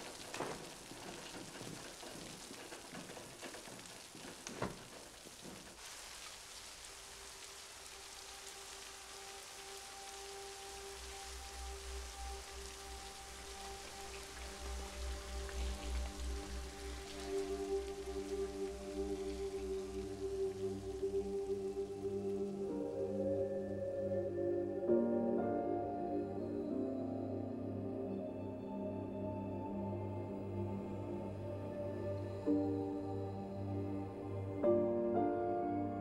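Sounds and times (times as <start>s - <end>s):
heavy rain hissing: 0.0s - 27.8s
film score with held notes: 7.9s - 36.0s.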